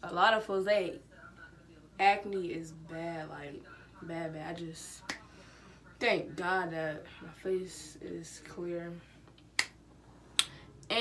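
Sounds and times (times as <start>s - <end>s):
finger snaps: 9.4s - 9.8s, 10.4s - 10.6s.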